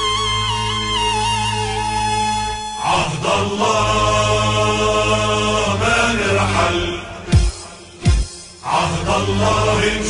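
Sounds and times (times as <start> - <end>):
low musical accompaniment: 0.0 - 10.0
voices chanting a song: 2.8 - 10.0.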